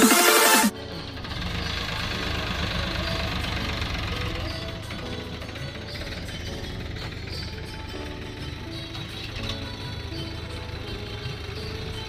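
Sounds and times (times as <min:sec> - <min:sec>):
music playing: 0:00.0 - 0:12.0
tractor diesel engine running: 0:00.0 - 0:12.0.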